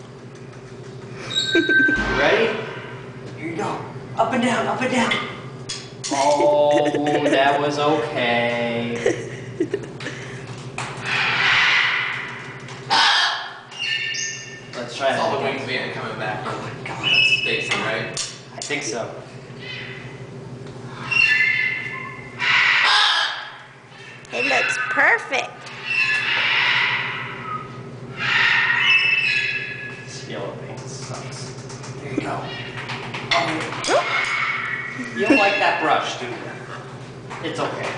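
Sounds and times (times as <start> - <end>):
macaw squawking: 11.0 - 14.6, 19.6 - 20.2, 20.9 - 30.1, 33.8 - 36.2.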